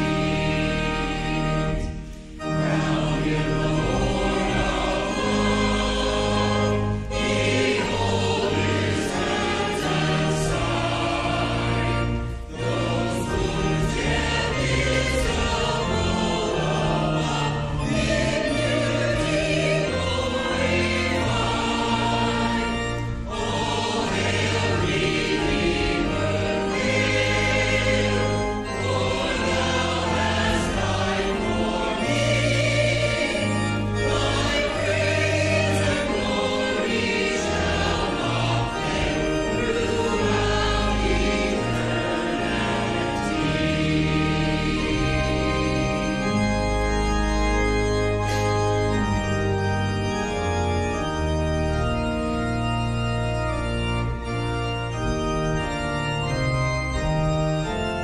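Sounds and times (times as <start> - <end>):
church choir singing: 0.0 - 58.0
sustained low accompaniment: 0.0 - 58.0.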